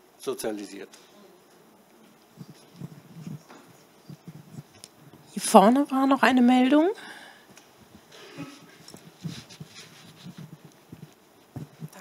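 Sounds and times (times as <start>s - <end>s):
audience rustling: 1.0s - 12.0s
soft bumps and knocks: 8.7s - 12.0s.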